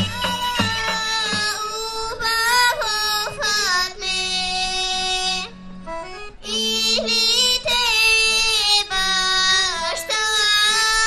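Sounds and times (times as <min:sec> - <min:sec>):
child singing folk song: 0:00.0 - 0:05.6, 0:06.4 - 0:11.0.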